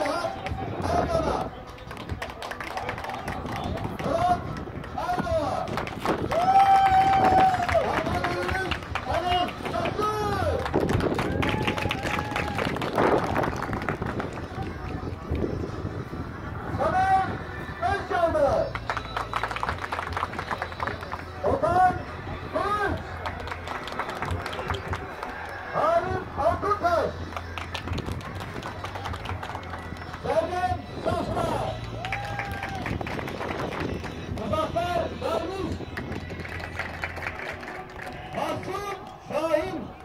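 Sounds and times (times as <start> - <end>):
hand clapping: 1.7 - 4.7, 18.7 - 21.2, 27.3 - 30.2.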